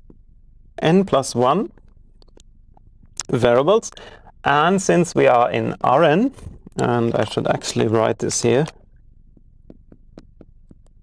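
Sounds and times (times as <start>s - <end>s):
marker pen tapping on glass: 9.4s - 11.0s.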